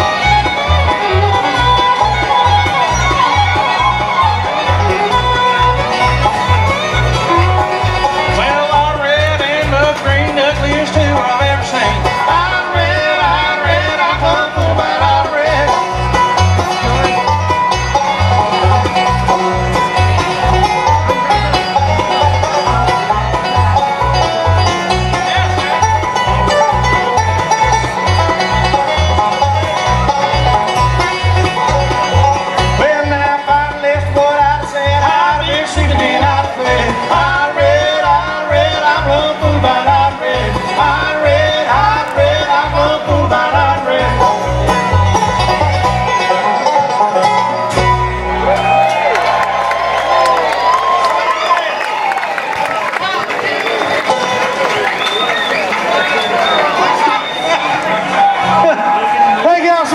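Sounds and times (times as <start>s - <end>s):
acoustic guitar rhythm: 0.0s - 48.3s
banjo: 0.0s - 51.6s, 52.6s - 59.9s
fiddle: 0.0s - 59.9s.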